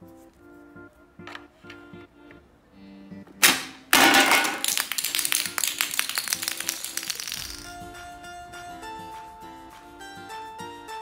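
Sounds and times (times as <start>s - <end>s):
plucked background music: 0.0s - 11.0s
plastic figures clattering on floor: 3.4s - 7.7s.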